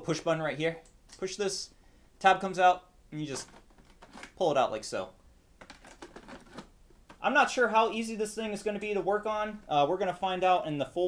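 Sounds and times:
hands handling laptop parts: 0:03.3 - 0:04.4, 0:05.6 - 0:07.2
plastic parts knocking: 0:03.4 - 0:04.3, 0:05.6 - 0:07.2.

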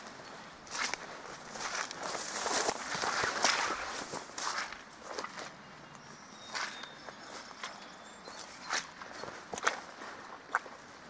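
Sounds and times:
footsteps through dry grass: 0:00.0 - 0:11.0.

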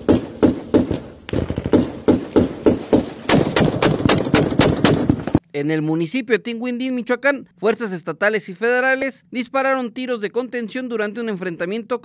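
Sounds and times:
rapid gunfire: 0:00.0 - 0:05.4.

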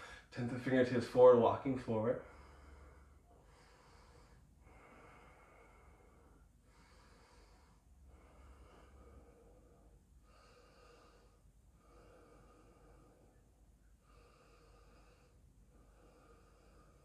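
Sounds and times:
person breathing slowly: 0:00.0 - 0:00.4, 0:01.9 - 0:17.0.

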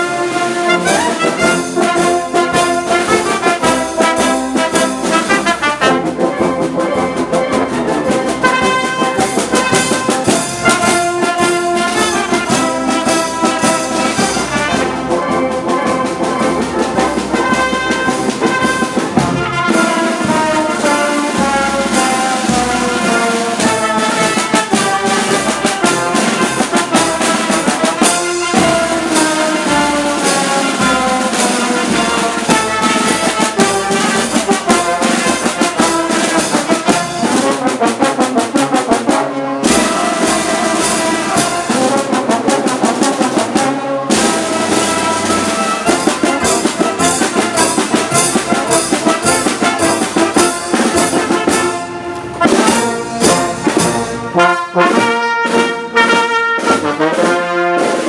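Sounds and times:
drum beating: 0:00.0 - 0:58.0
marching brass band playing: 0:00.0 - 0:58.0.

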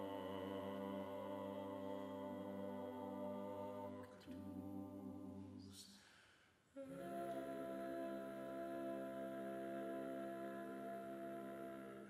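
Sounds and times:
vocal quartet holding a chord: 0:00.0 - 0:06.2, 0:06.8 - 0:12.0.

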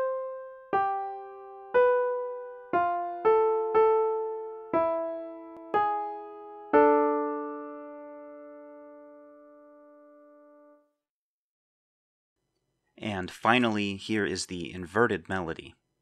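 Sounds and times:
two-voice piano counterpoint: 0:00.0 - 0:10.9.

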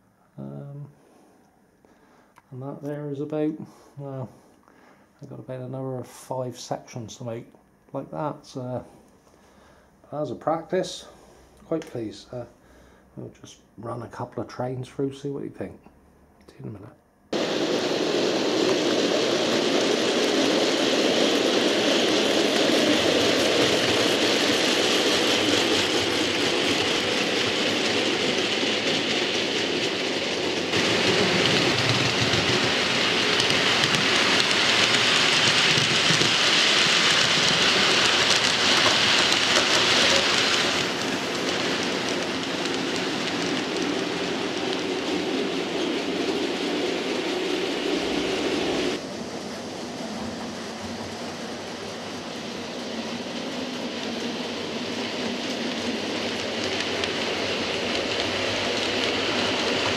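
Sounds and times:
model train wheels whirring: 0:17.3 - 0:59.9.

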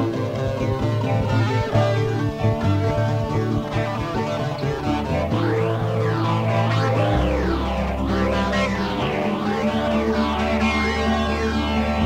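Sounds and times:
high sweeping sound: 0:00.0 - 0:12.0
jam-band instrumental music: 0:00.0 - 0:12.0.

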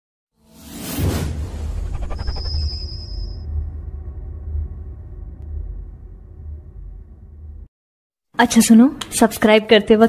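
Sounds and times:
whoosh: 0:00.5 - 0:07.7
deep bass rumble: 0:03.2 - 0:07.7.

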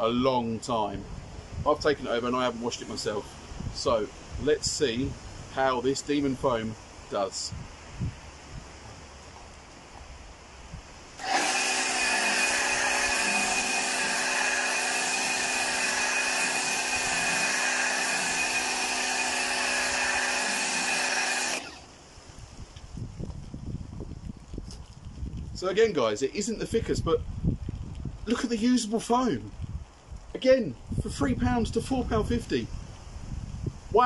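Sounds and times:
pressure washer motor hum: 0:11.2 - 0:21.9.

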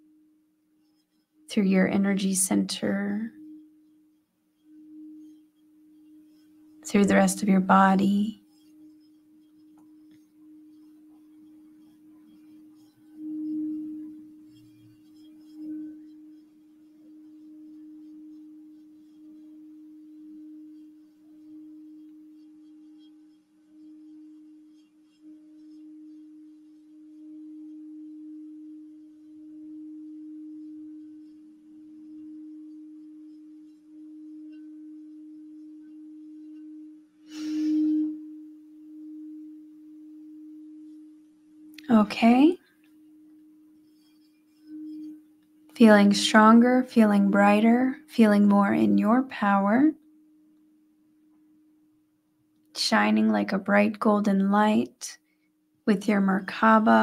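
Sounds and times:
singing bowl ringing tone: 0:00.0 - 0:57.0.

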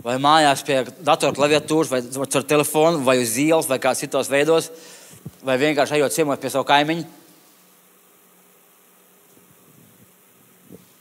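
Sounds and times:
low electrical hum: 0:00.0 - 0:11.0
microphone hiss: 0:00.0 - 0:11.0.

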